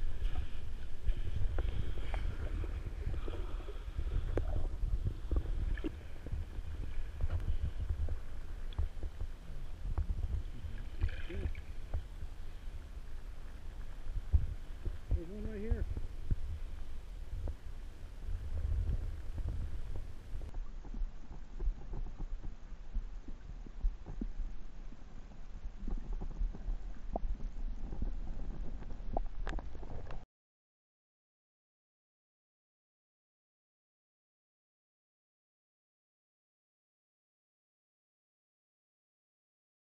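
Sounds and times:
muffled underwater rumble: 0:00.0 - 0:30.2
faint clicks: 0:25.8 - 0:30.2.

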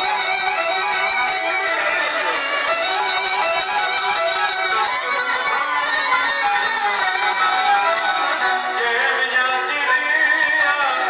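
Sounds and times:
violin playing folk music: 0:00.0 - 0:11.0
person singing: 0:08.6 - 0:11.0.

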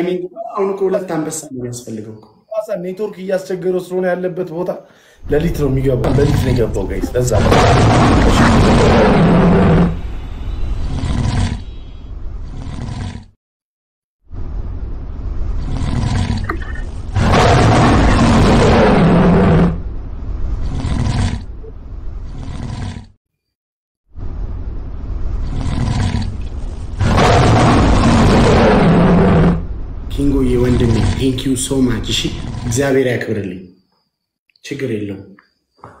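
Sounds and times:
deep lion roar: 0:05.6 - 0:10.0, 0:10.9 - 0:11.6, 0:12.5 - 0:13.4, 0:15.6 - 0:19.8, 0:20.6 - 0:21.5, 0:22.2 - 0:23.2, 0:25.4 - 0:33.0.

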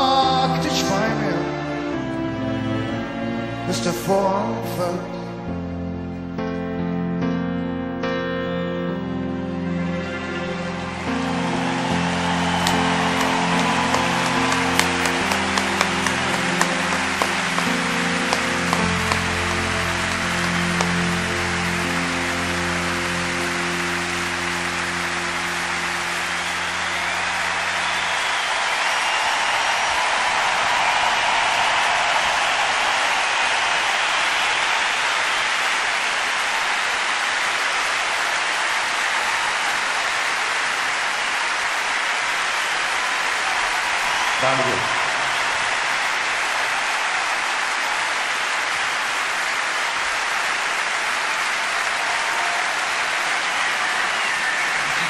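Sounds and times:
crowd applauding and cheering: 0:00.0 - 0:04.8, 0:08.8 - 0:55.0
live slow ballad: 0:00.0 - 0:27.7.

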